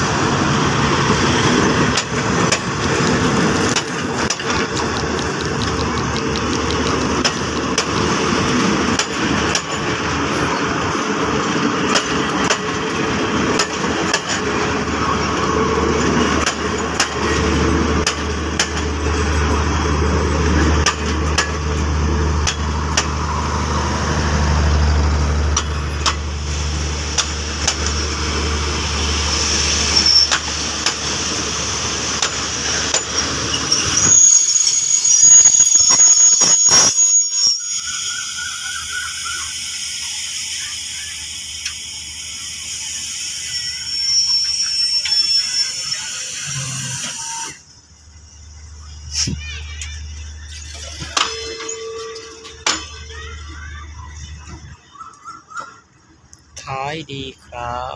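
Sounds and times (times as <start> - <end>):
train coaches rumbling past: 0.0 - 57.9
wheels clicking over rail joints: 1.4 - 14.7, 15.8 - 23.2, 27.1 - 28.1, 32.1 - 34.0, 49.4 - 56.6
high-pitched wheel squeal: 29.8 - 30.5, 32.9 - 41.6, 42.3 - 56.0.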